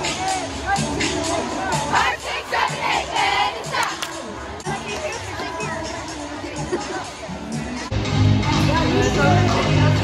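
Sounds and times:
arena music: 0.0s - 10.0s.

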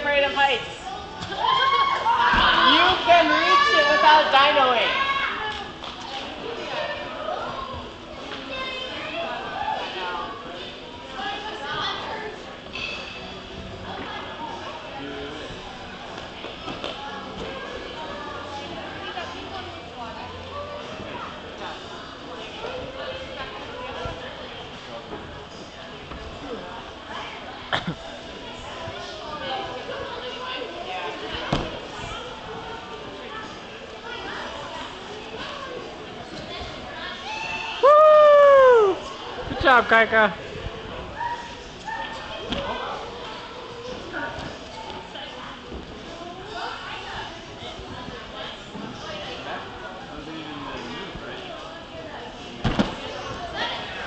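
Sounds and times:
background chatter: 0.0s - 54.0s.

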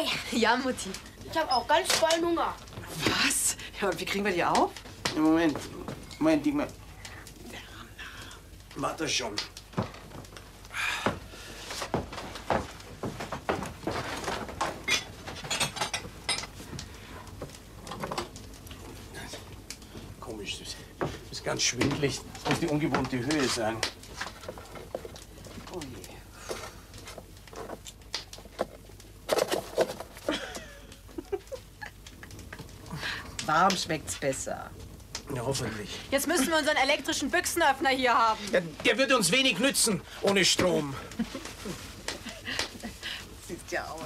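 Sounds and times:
utensils and crockery clinking: 14.6s - 16.6s.

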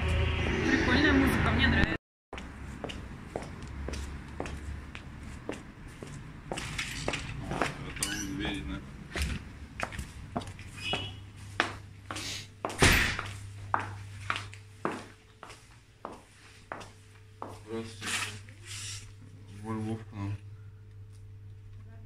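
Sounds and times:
footsteps on paving and tiles: 2.3s - 18.5s
loud thump: 12.7s - 13.3s.

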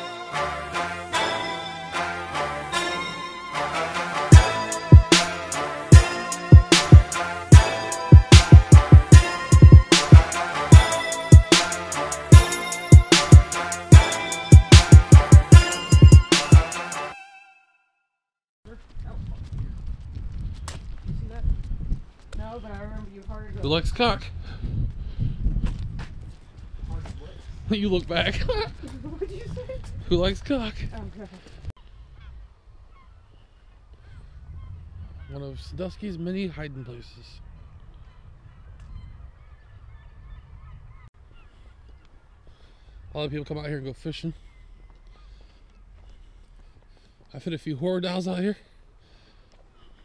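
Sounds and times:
footsteps on sidewalk: 4.3s - 16.7s, 18.7s - 23.7s, 24.7s - 34.1s, 41.2s - 43.1s, 44.5s - 50.0s
distant birds calling: 31.8s - 35.5s, 36.5s - 47.2s.

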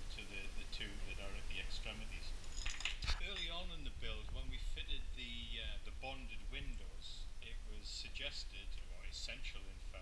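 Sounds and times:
small hard objects clinking: 2.4s - 3.7s.

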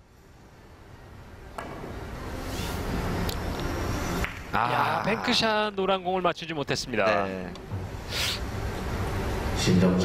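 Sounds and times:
cue striking billiard ball: 1.6s - 2.1s.

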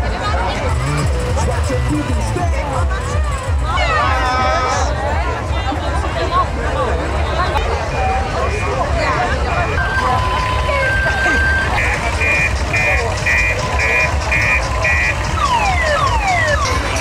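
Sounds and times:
street crowd chatter: 0.0s - 17.0s
electronic alarm beeping: 9.8s - 17.0s.

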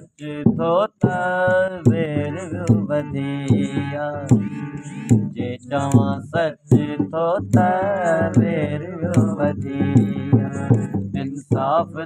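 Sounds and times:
instrumental accompaniment: 0.0s - 12.0s
man singing: 0.0s - 12.0s.

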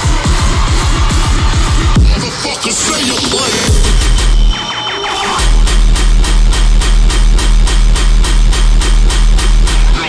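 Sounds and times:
loud dubstep music: 0.0s - 10.0s.

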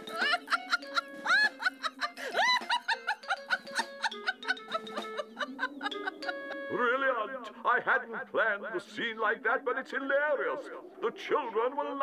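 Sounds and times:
cartoon character giggling: 0.0s - 6.7s.

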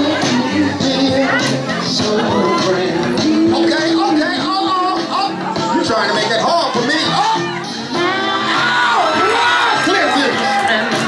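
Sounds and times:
loud music: 0.0s - 11.0s
crowd cheering and whooping: 1.2s - 3.1s, 7.1s - 11.0s.

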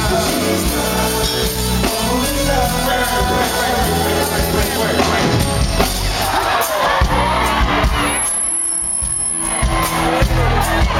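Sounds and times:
person singing: 0.0s - 7.7s
live band through pa: 0.0s - 10.9s.

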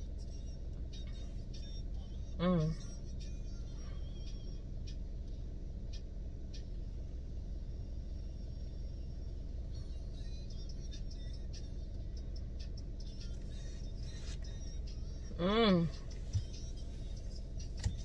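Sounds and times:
car interior rumble: 0.0s - 18.0s.

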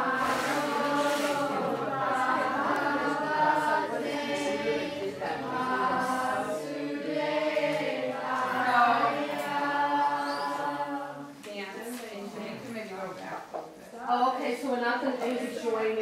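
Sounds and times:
group of voices chanting: 0.0s - 11.3s.

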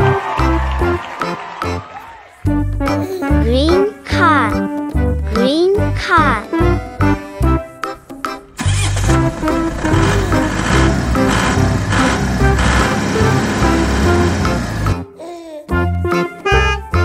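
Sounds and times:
children's background music: 0.0s - 17.0s
car engine sound effect: 8.6s - 15.0s.

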